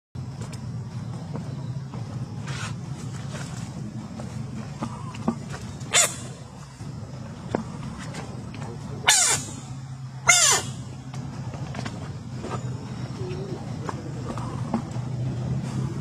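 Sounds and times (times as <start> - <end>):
steady low hum: 0.2 - 16.0.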